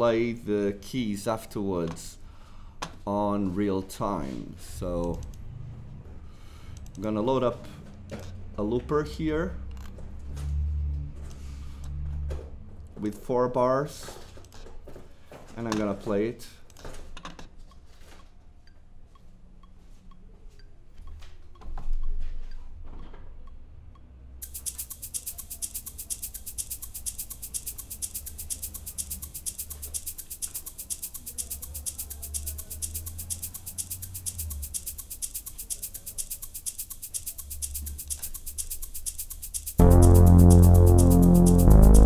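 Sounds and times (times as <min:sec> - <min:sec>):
clicks: 0:24.0 - 0:42.0
fast high percussion pattern: 0:24.4 - 0:42.0
synth bass line: 0:39.8 - 0:42.0.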